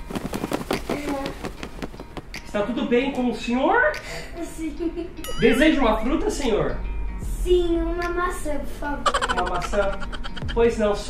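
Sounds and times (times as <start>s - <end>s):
cap flapping whooshes: 0.0s - 2.5s.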